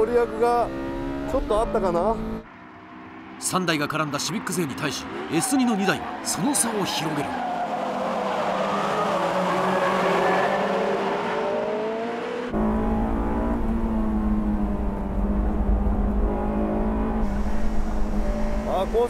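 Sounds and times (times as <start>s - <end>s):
race car engines at high revs: 0.0s - 19.0s
wind and road noise rumble: 0.0s - 19.0s.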